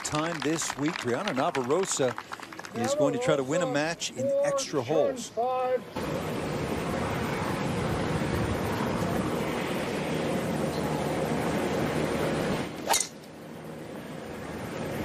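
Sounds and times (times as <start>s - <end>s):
wind: 0.0s - 15.0s.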